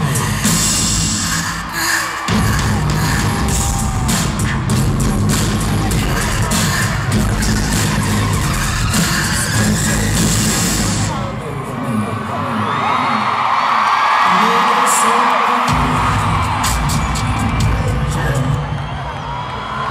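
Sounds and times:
pounding bass-heavy music: 0:00.0 - 0:11.7, 0:15.7 - 0:19.0
crowd screaming and cheering: 0:00.0 - 0:19.9.

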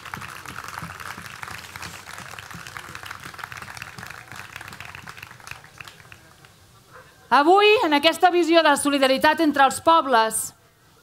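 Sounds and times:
audience applauding: 0:00.0 - 0:06.6.

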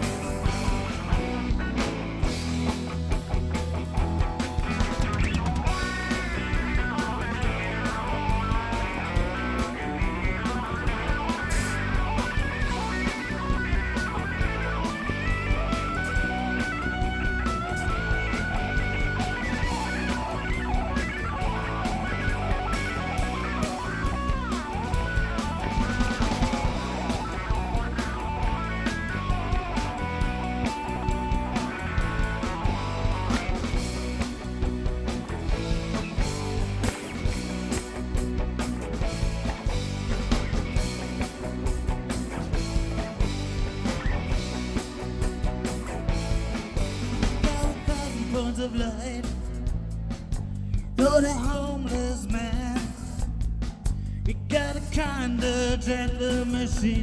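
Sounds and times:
drum kit: 0:00.0 - 0:57.0
lead electric guitar: 0:00.0 - 0:57.0
rock band playing: 0:00.0 - 0:57.0.

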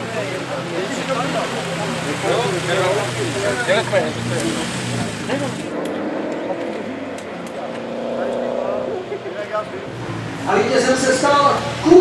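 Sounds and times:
race car engine idling: 0:00.0 - 0:12.0.

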